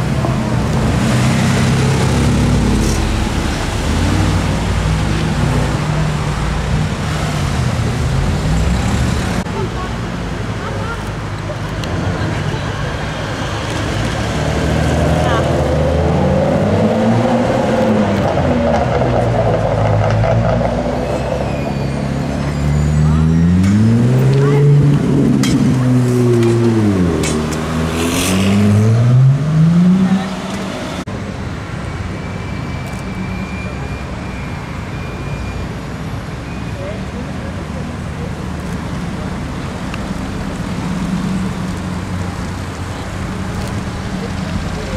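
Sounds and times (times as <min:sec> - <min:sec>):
supercar engines revving: 0:00.0 - 0:31.1
street noise: 0:00.0 - 0:44.9.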